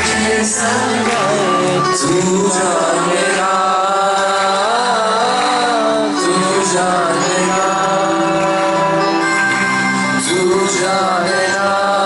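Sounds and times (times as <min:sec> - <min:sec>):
live band playing: 0:00.0 - 0:12.0
person singing long notes: 0:00.0 - 0:12.0.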